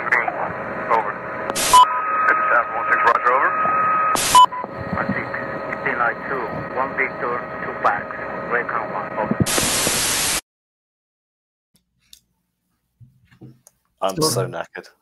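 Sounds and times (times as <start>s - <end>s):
voices over crackly radio: 0.0s - 9.7s
radio static bursts: 0.0s - 10.4s.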